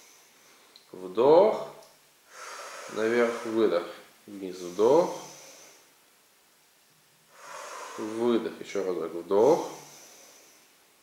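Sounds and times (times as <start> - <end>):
person breathing: 2.3 - 6.0, 7.3 - 8.5, 9.5 - 10.9.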